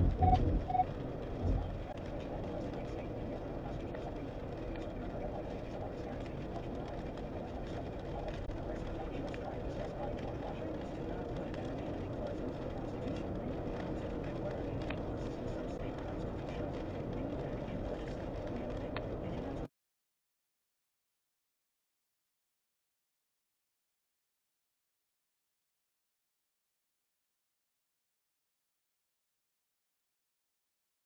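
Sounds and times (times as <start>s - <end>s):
low thump: 0.0s - 0.8s
car road and tyre noise: 0.0s - 19.6s.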